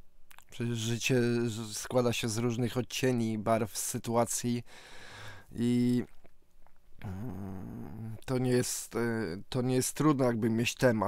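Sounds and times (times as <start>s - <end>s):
faint mouth clicks: 0.3s - 0.6s.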